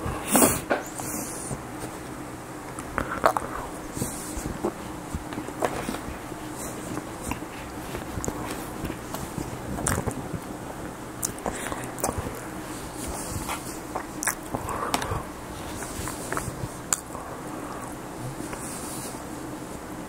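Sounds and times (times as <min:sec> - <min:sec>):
wet mouth sounds: 0:02.7 - 0:19.2
close chewing and biting: 0:02.7 - 0:19.3.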